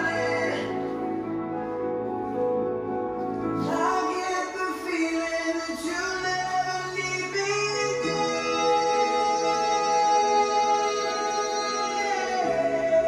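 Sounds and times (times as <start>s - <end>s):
slow instrumental music: 0.0s - 13.0s.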